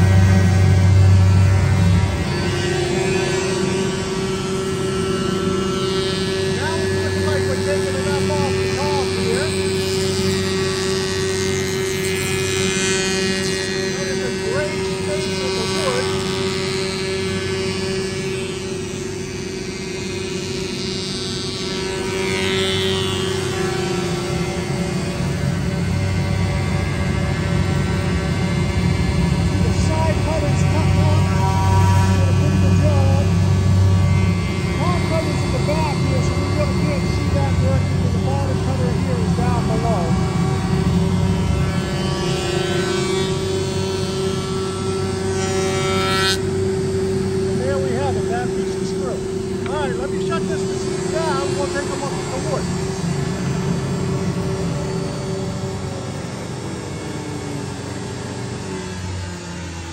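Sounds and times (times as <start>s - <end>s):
planer motor hum and whine: 0.0s - 59.9s.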